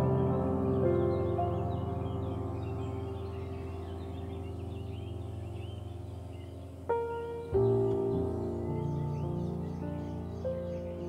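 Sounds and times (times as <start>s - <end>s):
sustained keyboard chord: 0.0s - 10.9s
small birds chirping: 0.0s - 11.0s.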